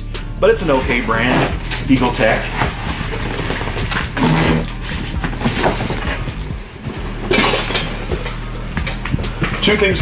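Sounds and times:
cardboard and plastic rustling: 0.7s - 10.0s.

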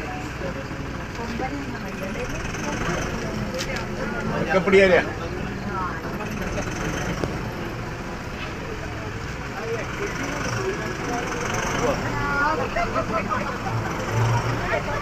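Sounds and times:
people talking quietly: 0.0s - 15.0s
vehicle engine running: 0.0s - 15.0s.

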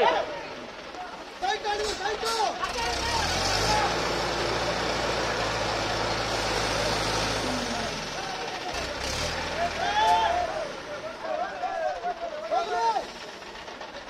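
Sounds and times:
diesel crane engine running: 0.0s - 14.0s
people's voices: 0.0s - 14.0s.

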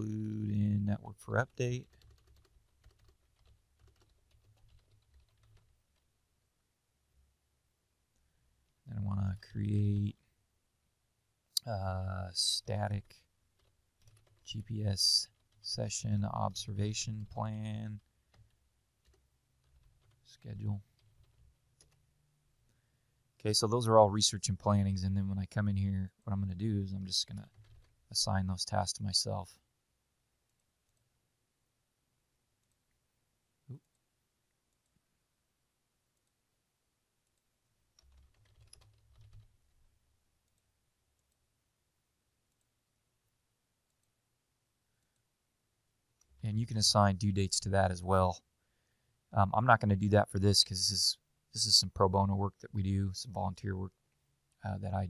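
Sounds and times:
typing on computer keyboard: 1.5s - 6.0s, 13.6s - 14.6s, 18.3s - 22.0s, 27.4s - 28.0s, 38.0s - 39.6s.

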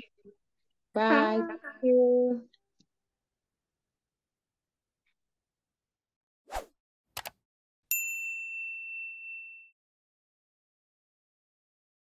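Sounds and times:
bright bell ding: 7.9s - 9.8s.

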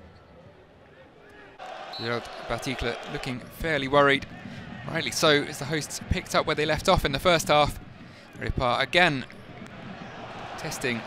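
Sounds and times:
low stadium background wash: 0.0s - 11.0s.

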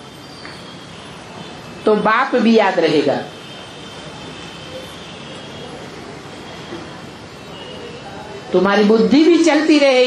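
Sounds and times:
faint high steady tones: 0.0s - 10.0s
steady background noise: 0.0s - 10.0s.

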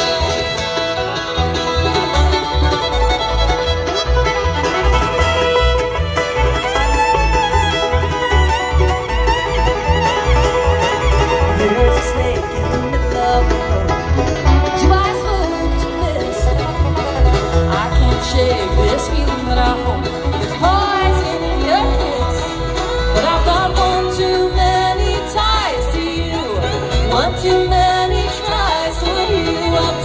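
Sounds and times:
acoustic guitar: 0.0s - 30.0s
banjo: 0.0s - 30.0s
fiddle: 0.0s - 30.0s
upright bass: 0.0s - 30.0s.

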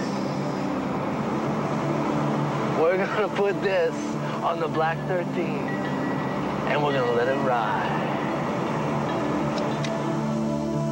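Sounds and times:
car road and engine noise: 0.0s - 10.9s.

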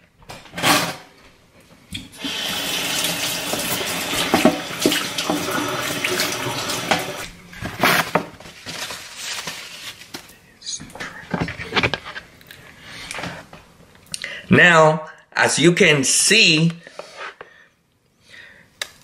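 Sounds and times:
tap water running: 2.0s - 7.3s.

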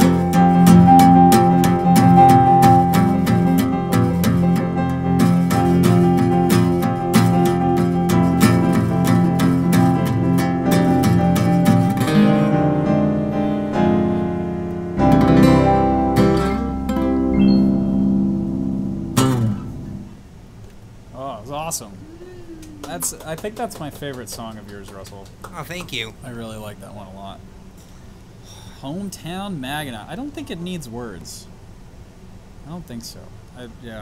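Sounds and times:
digital piano chords: 0.0s - 20.2s
guitar strummed: 0.0s - 20.2s.

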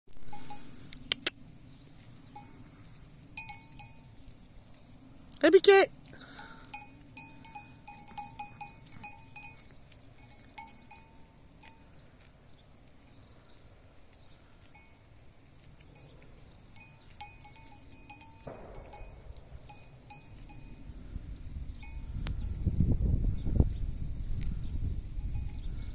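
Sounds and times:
livestock bell clinking: 0.2s - 0.9s, 2.2s - 5.0s, 6.2s - 12.2s, 14.5s - 22.8s, 25.0s - 25.9s.

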